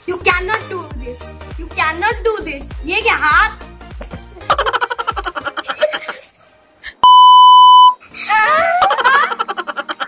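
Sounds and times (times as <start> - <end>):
test tone beep: 7.0 - 8.0.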